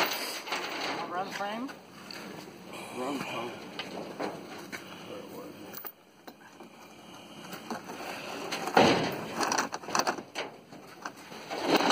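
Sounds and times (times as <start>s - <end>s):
chain clanking on metal: 0.0s - 1.4s.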